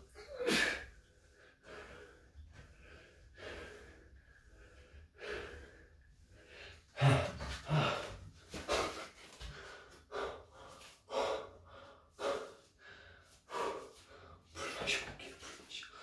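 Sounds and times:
man panting hard: 0.4s - 14.6s.

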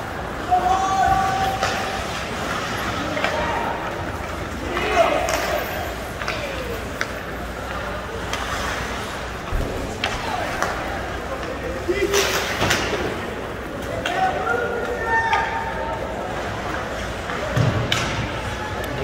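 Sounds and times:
spectators' voices and calls: 0.0s - 19.0s
hockey sticks clacking on puck: 1.1s - 15.8s, 17.0s - 18.9s.

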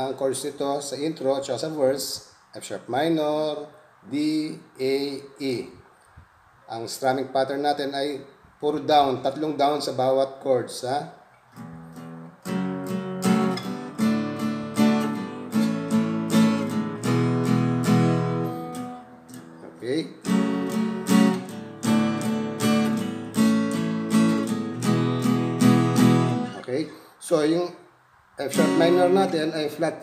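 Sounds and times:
acoustic guitar strumming: 11.5s - 27.0s, 28.5s - 29.4s.

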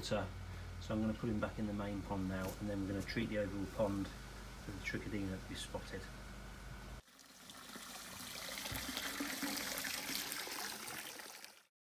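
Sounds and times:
water trickling and splashing: 7.0s - 11.7s.

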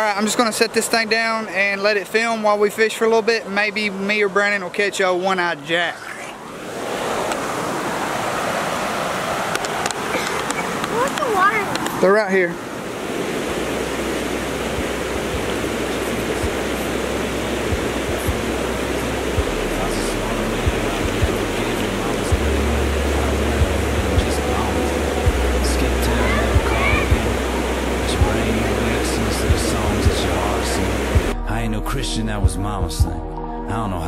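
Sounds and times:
creek water rushing over rocks: 0.0s - 31.4s.

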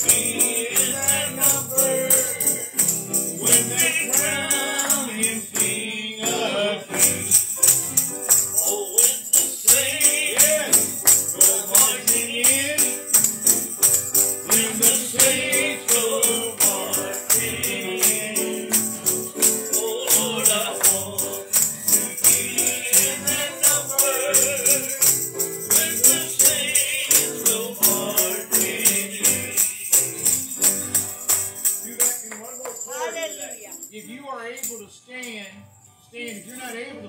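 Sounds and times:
congregation singing gospel song: 0.0s - 32.0s
piano accompaniment: 0.0s - 33.1s
tambourine jingling: 0.0s - 36.9s.

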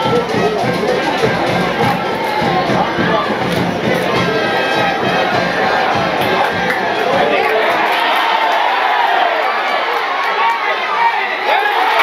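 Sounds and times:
music: 0.0s - 8.9s
stadium crowd din: 0.0s - 12.0s.

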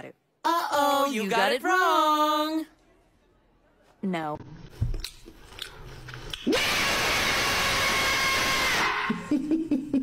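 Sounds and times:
loud harsh noise: 6.5s - 9.1s.

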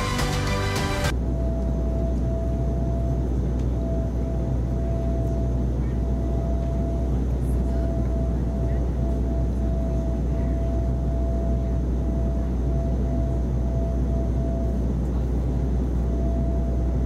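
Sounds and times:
jet engines droning: 0.0s - 17.0s.

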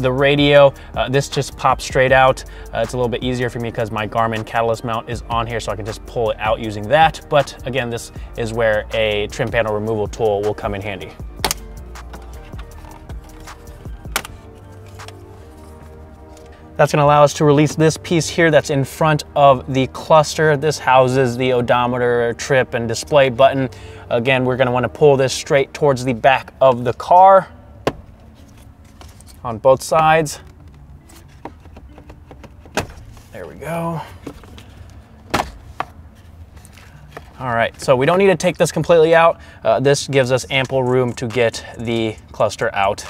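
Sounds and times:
background music with held notes: 0.0s - 43.0s
plastic clips popping: 11.4s - 12.8s.

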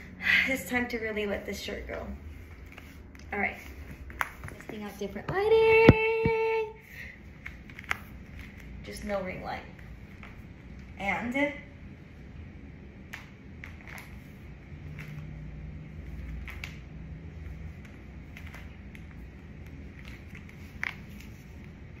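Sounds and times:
steady low hum: 0.0s - 22.0s
bare feet on hardwood floor: 2.4s - 6.6s.

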